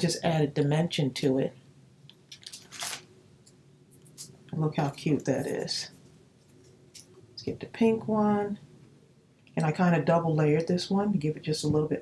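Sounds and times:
paper rustle: 0:02.3 - 0:03.1.

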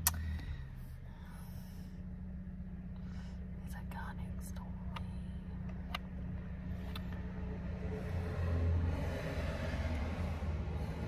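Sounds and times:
small sharp clicks: 0:00.0 - 0:00.4
low hum inside a car: 0:00.0 - 0:11.0.

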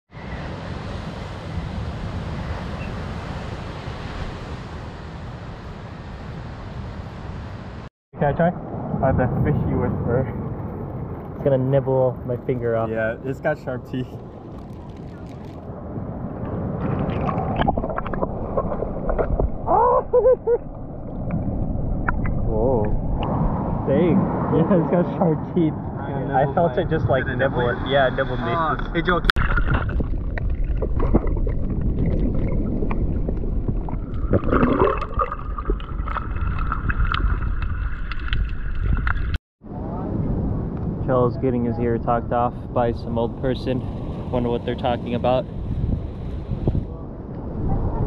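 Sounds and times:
water sloshing underwater: 0:14.1 - 0:23.7, 0:29.4 - 0:39.4.

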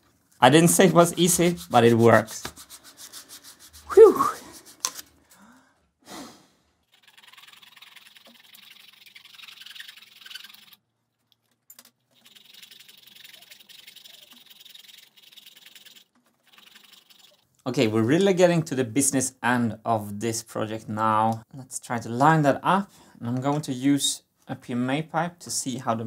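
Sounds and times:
hands scratching and rubbing: 0:00.3 - 0:05.2, 0:06.9 - 0:10.8, 0:12.2 - 0:17.4.

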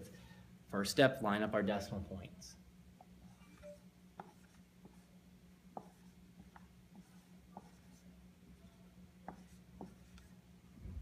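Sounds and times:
steady low hum: 0:00.0 - 0:11.0
soft low thump: 0:10.8 - 0:11.0.

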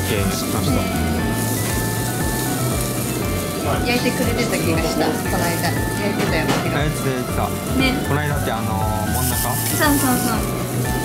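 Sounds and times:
background music: 0:00.0 - 0:11.0
beef sizzling on a grill: 0:00.0 - 0:11.0
conversation: 0:00.0 - 0:11.0.

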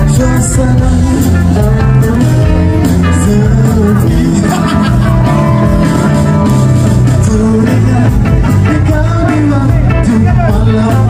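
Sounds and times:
live band music: 0:00.0 - 0:11.0.

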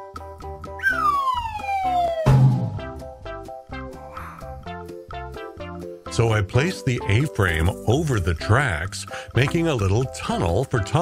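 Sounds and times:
background music: 0:00.0 - 0:11.0
cartoon falling whistle: 0:00.8 - 0:02.8.

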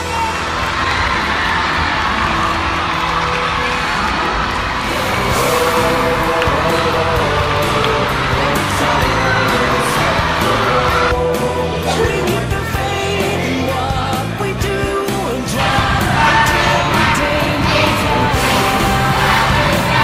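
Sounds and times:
children cheering and shouting: 0:00.0 - 0:13.1
background music: 0:00.0 - 0:20.0.

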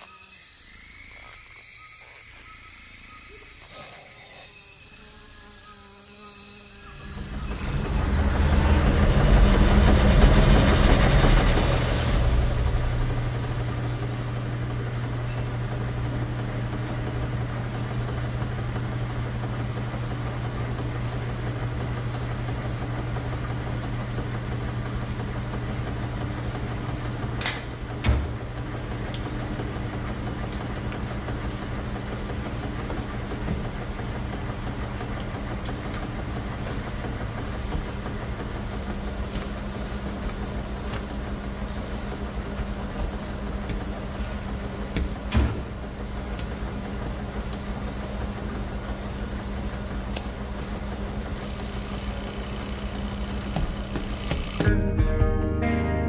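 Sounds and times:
washing machines humming: 0:00.0 - 0:54.8.

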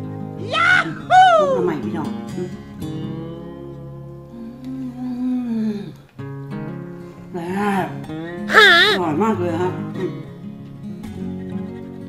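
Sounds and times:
soft acoustic guitar music: 0:00.0 - 0:12.0
person humming mmm: 0:08.5 - 0:09.0.

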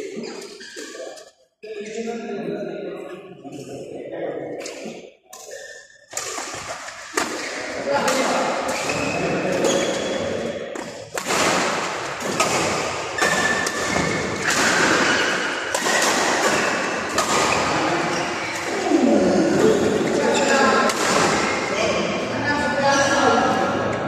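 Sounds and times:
badminton rackets hitting shuttlecock: 0:05.4 - 0:18.8, 0:19.6 - 0:21.6.

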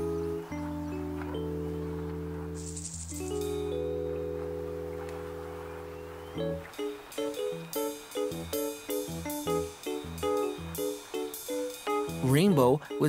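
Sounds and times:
gentle chords over bass: 0:00.0 - 0:13.0.

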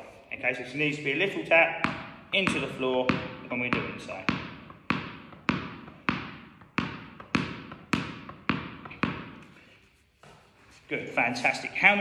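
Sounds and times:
tennis ball bouncing on wooden floor: 0:01.7 - 0:10.5
racket tapping tennis ball: 0:01.8 - 0:10.4.

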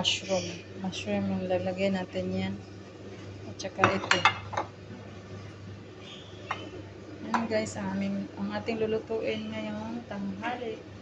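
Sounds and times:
ceramic bowls clinking: 0:06.4 - 0:07.5.

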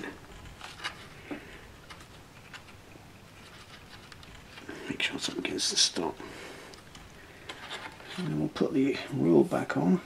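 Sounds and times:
wire model handling noise: 0:00.0 - 0:05.5.

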